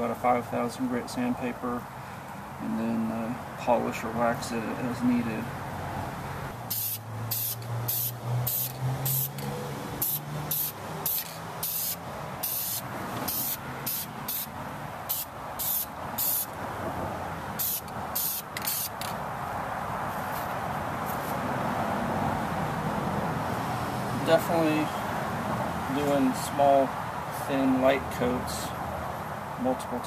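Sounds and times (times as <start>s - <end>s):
spray can hissing bursts: 6.7s - 16.6s, 17.6s - 19.1s.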